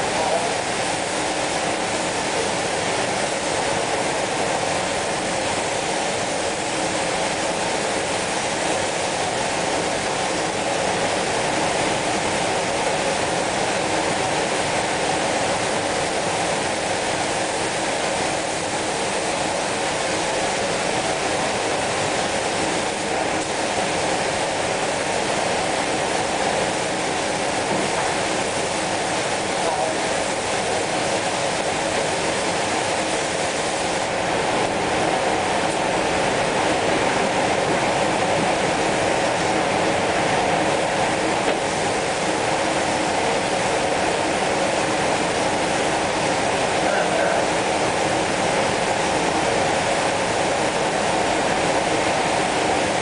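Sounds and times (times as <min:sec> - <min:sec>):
booth ventilation rushing air: 0:00.0 - 0:53.0
spray gun hissing: 0:05.8 - 0:34.8.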